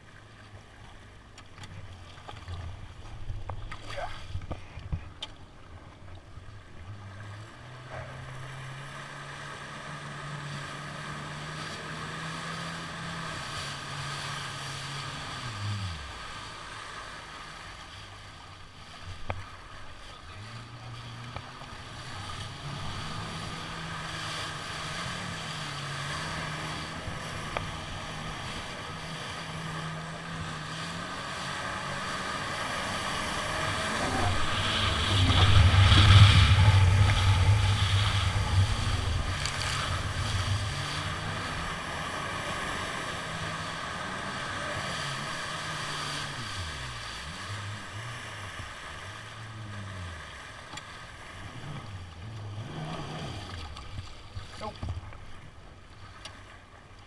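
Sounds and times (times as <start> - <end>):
jet ski engine running: 0.0 - 57.0
rushing spray and wind: 21.8 - 52.0.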